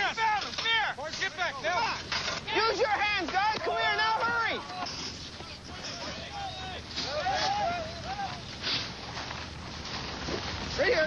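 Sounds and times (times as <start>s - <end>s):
people calling out: 2.5s - 8.8s.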